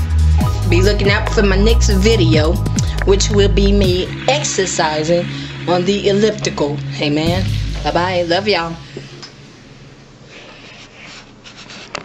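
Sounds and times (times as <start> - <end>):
low steady hum: 0.4 - 10.9
faint rubbing and rustling: 10.3 - 12.0.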